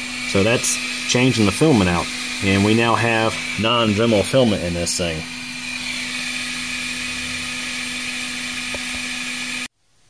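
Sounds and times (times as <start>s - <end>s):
printer humming with whine: 0.0s - 9.7s.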